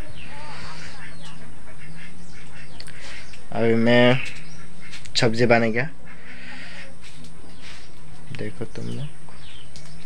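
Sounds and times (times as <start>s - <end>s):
faint poultry calls: 0.0s - 10.0s
steady low hum: 0.0s - 10.0s.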